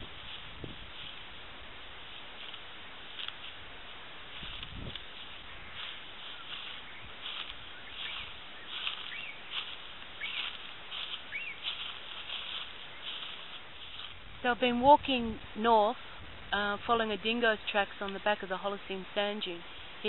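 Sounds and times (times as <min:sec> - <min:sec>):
birds chirping: 0:03.3 - 0:14.0.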